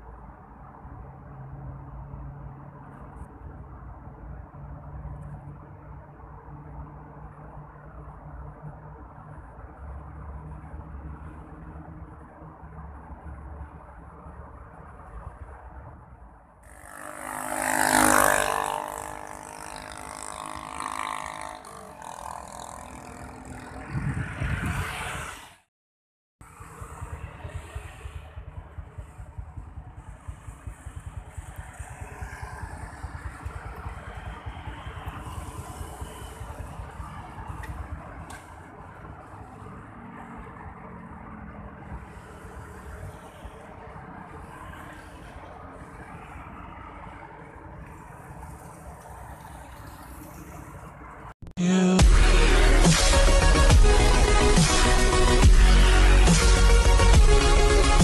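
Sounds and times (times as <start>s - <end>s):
low rumble of traffic: 0.0s - 25.7s, 26.4s - 58.0s
vehicle passing: 16.6s - 25.7s
wind buffeting microphone: 23.7s - 25.3s.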